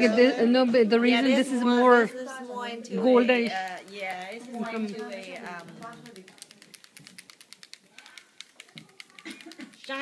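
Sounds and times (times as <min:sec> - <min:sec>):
person speaking: 0:00.0 - 0:10.0
rapid light clicking: 0:03.5 - 0:10.0.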